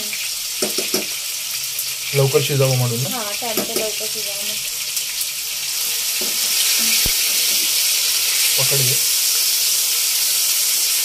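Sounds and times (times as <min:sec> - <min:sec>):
oil sizzling in a pan: 0:00.0 - 0:11.0.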